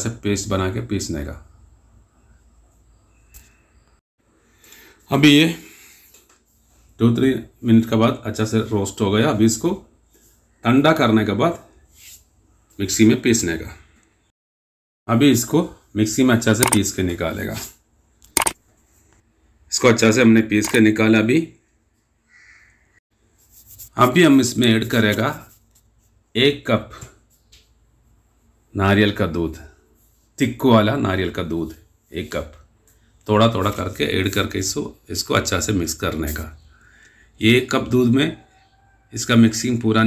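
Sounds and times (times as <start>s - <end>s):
person speaking: 16.4s - 17.4s, 19.7s - 21.1s
faint animal call: 38.3s - 39.2s.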